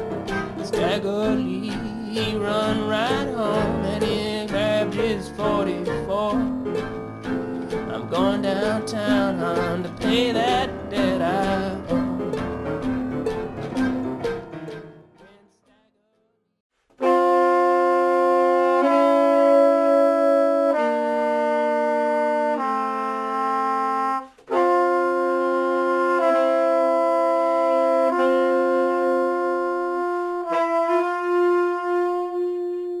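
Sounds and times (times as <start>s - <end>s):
brass and saxophone chords: 0.0s - 15.5s, 17.0s - 33.0s.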